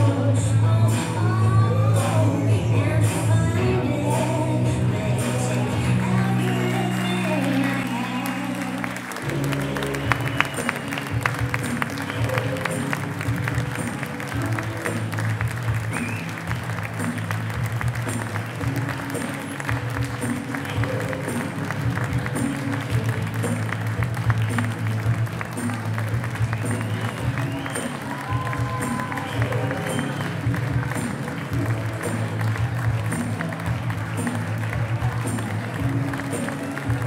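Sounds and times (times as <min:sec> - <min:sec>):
music with steady beat: 0:00.0 - 0:37.0
audience applauding: 0:05.1 - 0:37.0.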